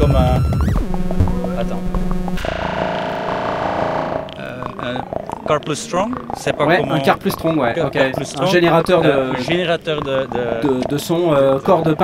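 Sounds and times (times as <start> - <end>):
sustained synth tone with delay: 0.0 - 6.9.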